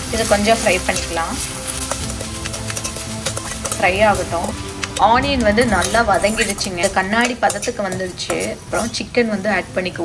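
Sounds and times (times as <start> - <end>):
metal spoon scraping a pan: 0.0 - 9.6
onions sizzling in hot oil: 0.0 - 10.0.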